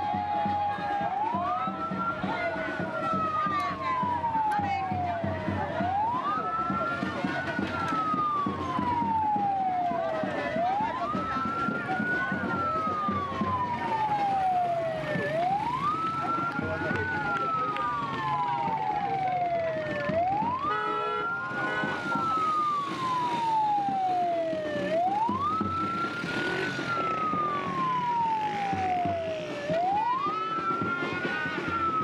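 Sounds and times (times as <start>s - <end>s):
ambulance siren wailing: 0.0s - 32.0s.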